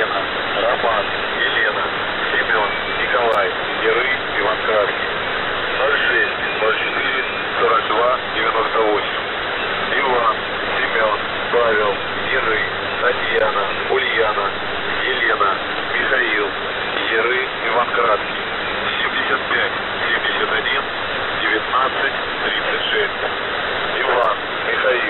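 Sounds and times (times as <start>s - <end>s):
radio static hiss: 0.0s - 25.0s
voice over shortwave radio: 0.0s - 25.0s.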